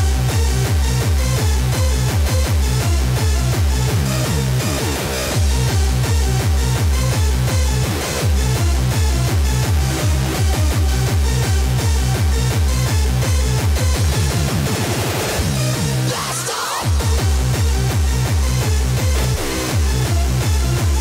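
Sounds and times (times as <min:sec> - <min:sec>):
techno dance music: 0:00.0 - 0:21.0.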